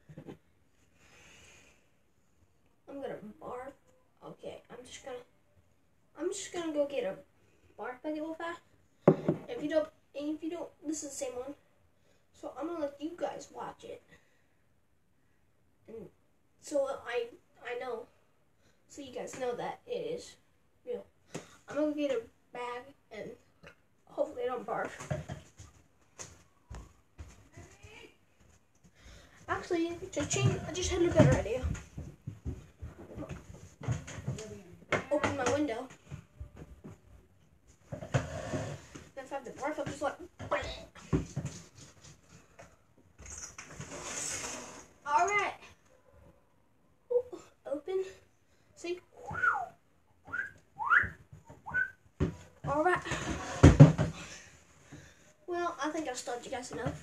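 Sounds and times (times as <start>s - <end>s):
person whistling notes: 50.3s - 51.9s.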